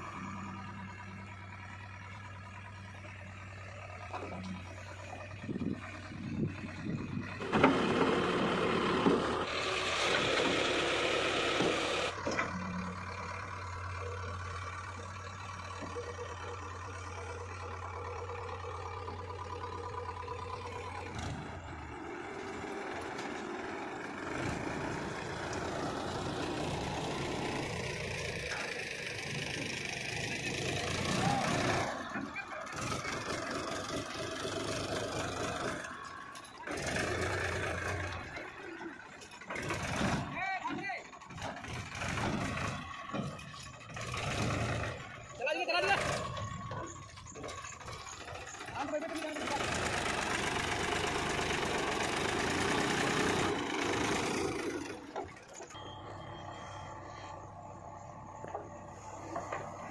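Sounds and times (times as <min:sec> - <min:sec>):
diesel engines running: 0:00.0 - 0:59.9.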